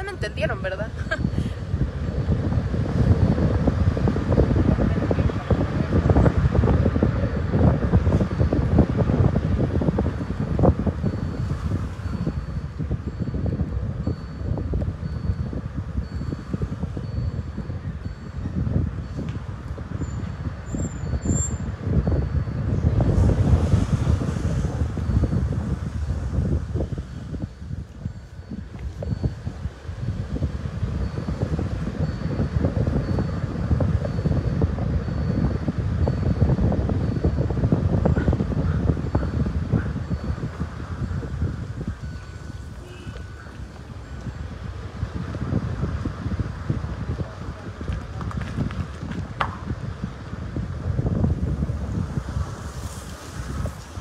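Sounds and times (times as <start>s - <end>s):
road and engine noise: 0.0s - 54.0s
wind buffeting microphone: 0.0s - 54.0s.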